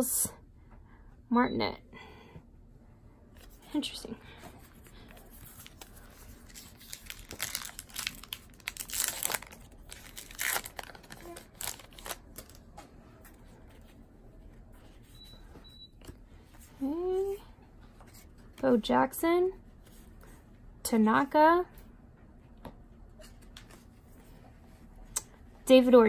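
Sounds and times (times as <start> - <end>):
card pack wrapper crinkling and tearing: 5.3 - 12.6.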